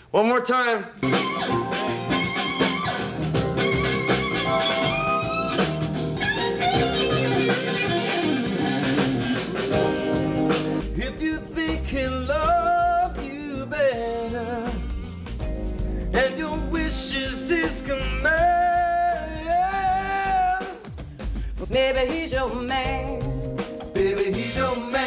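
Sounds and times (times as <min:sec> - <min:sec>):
electric guitar bending notes: 0:01.0 - 0:11.1
person singing: 0:10.8 - 0:14.9, 0:16.0 - 0:20.9, 0:21.6 - 0:25.0.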